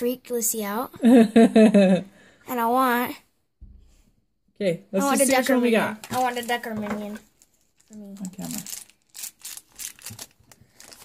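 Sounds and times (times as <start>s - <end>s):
foil bag crinkling: 6.0s - 11.0s.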